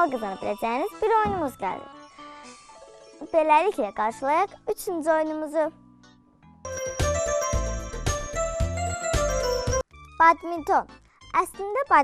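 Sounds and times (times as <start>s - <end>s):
musical jingle with bass beat: 6.7s - 9.8s.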